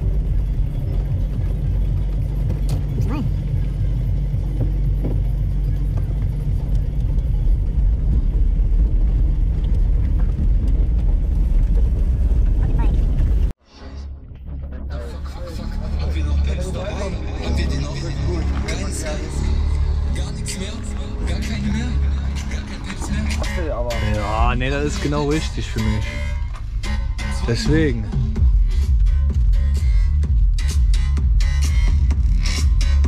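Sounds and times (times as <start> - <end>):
car engine and road noise: 0.0 - 33.0.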